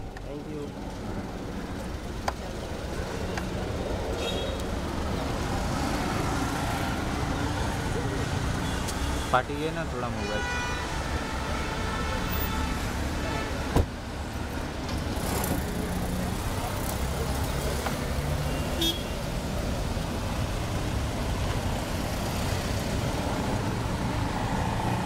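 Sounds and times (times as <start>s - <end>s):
road traffic noise: 0.0s - 25.0s
car horn: 4.2s - 4.6s, 10.1s - 13.8s, 18.4s - 19.2s.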